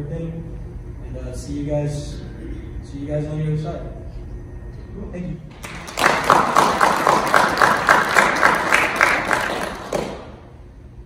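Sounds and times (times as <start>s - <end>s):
audience applauding: 5.5s - 10.4s
close hand claps: 5.5s - 10.4s.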